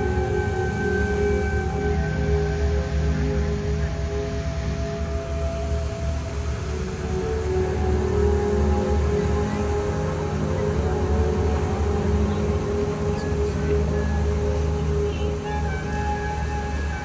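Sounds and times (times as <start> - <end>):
dark ambient music drones: 0.0 - 17.0.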